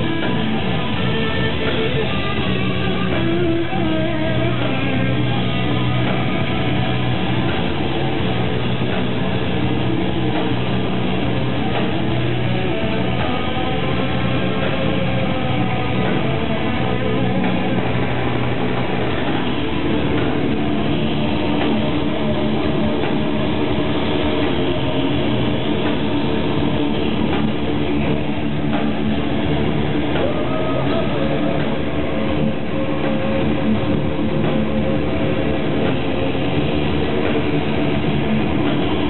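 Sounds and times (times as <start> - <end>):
distorted guitars droning chord: 0.0 - 39.0
rock band playing live: 0.0 - 39.0.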